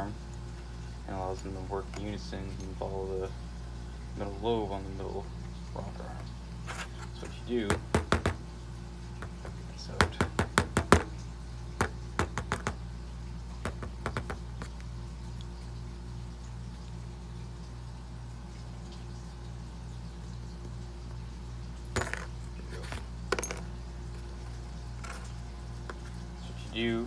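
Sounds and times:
metal clinks and taps: 0:22.0 - 0:23.7.

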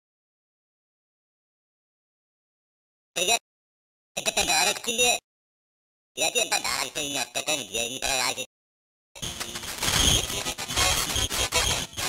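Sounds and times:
electronically distorted voice: 0:03.2 - 0:03.4, 0:04.2 - 0:05.2, 0:06.2 - 0:08.5, 0:09.2 - 0:12.0.

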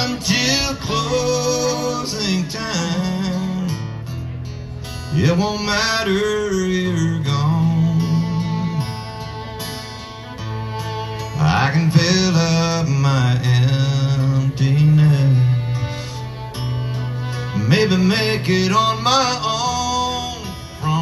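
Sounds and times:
man singing: 0:00.0 - 0:03.9, 0:05.1 - 0:09.0, 0:11.3 - 0:16.2, 0:17.5 - 0:21.0
acoustic guitar strummed: 0:00.0 - 0:21.0
fiddle playing: 0:00.0 - 0:21.0.

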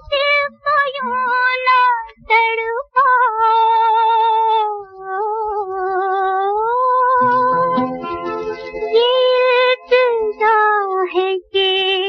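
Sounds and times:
high wavering film song melody: 0:07.2 - 0:10.8.

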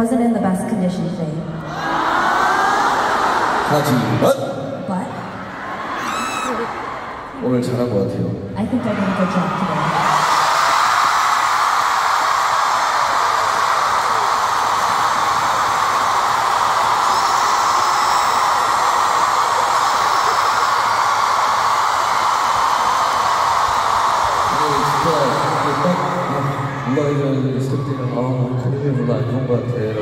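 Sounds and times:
crowd screaming and cheering: 0:01.6 - 0:07.8, 0:08.6 - 0:30.0.

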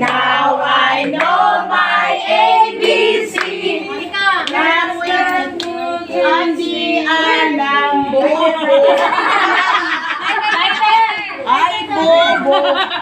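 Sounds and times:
women and children singing: 0:00.0 - 0:13.0.

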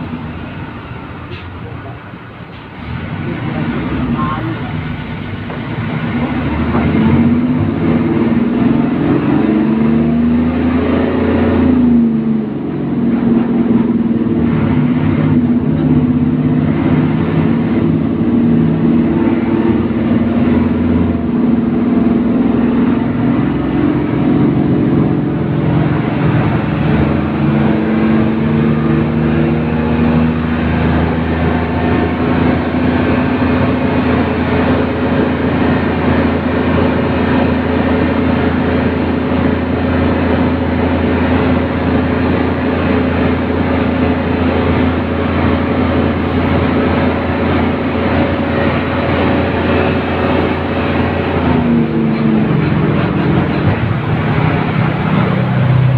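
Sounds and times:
bus diesel engine running: 0:00.0 - 0:55.9
road and wind noise: 0:00.0 - 0:55.9.

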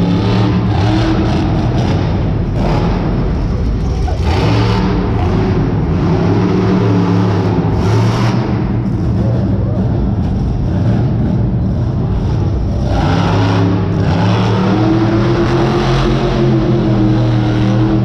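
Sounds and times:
loud truck engine revving: 0:00.0 - 0:18.0.

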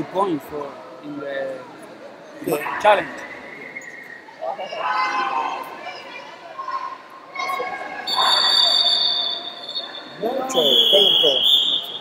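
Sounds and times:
voices in a hall: 0:00.0 - 0:12.0
high shrill tone: 0:08.1 - 0:12.0.

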